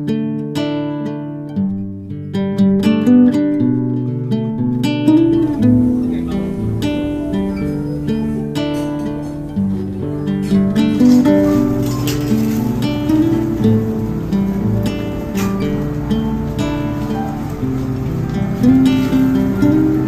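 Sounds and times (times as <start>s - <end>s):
gentle plucked guitar melody: 0.0s - 20.0s.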